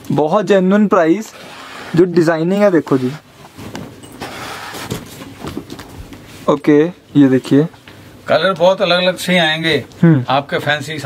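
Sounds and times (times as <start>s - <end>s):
cloth rustling and swishing: 1.3s - 6.5s.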